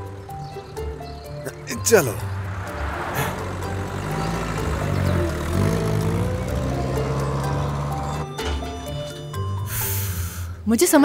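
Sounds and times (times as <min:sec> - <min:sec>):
background music: 0:00.0 - 0:11.0
car engine driving off: 0:01.7 - 0:09.7.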